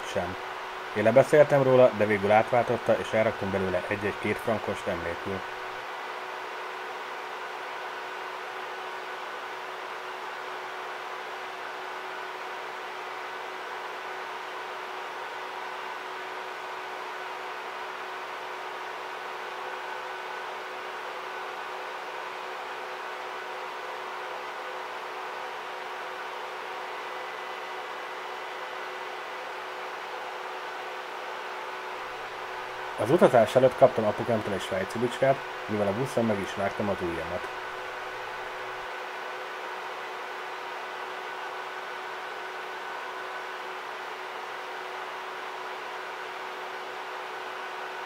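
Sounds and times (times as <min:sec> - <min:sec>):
faint constant hum: 0:00.0 - 0:48.0
fan whirring hiss: 0:00.0 - 0:48.0.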